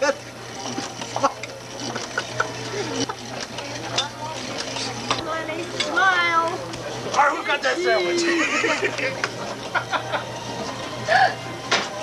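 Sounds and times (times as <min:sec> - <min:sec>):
dishes and utensils clinking: 0:00.5 - 0:06.9.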